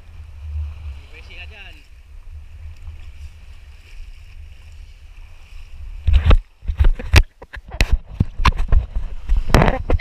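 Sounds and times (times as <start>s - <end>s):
sea water washing: 0.0s - 7.1s
wading through shallow water: 0.0s - 10.0s
wind on microphone: 0.0s - 10.0s.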